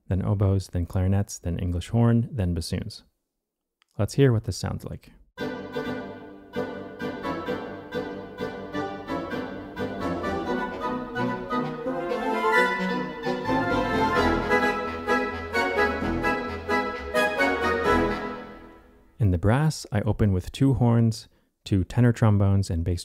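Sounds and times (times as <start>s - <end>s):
low contrabassoon downbeats: 5.4s - 18.7s
orchestral woodwinds playing: 5.4s - 18.8s.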